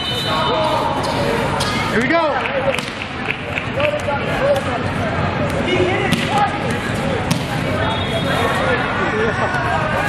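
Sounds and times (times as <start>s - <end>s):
many voices echoing: 0.0s - 10.0s.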